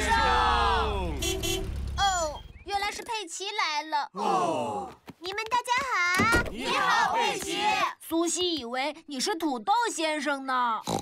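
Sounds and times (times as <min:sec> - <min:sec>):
cartoon car horn toot: 0:01.1 - 0:01.8.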